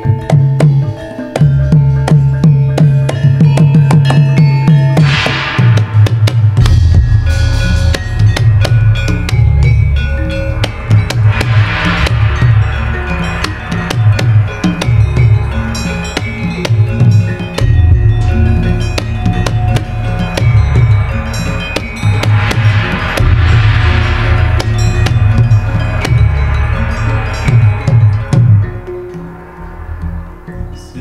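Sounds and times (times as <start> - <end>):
low drum strokes: 0.0 - 31.0
metallophones and gong-chimes: 0.0 - 31.0
bright hiss: 5.0 - 31.0
deep pulse: 5.0 - 31.0.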